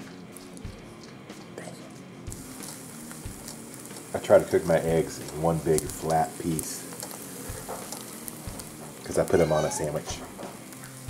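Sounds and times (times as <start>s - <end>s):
eggs sizzling in a frying pan: 0.0s - 11.0s.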